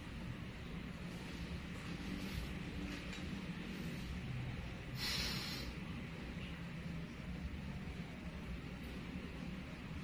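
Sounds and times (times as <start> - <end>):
low background hum: 0.0 - 10.0
forceful breath through nose: 4.9 - 5.8.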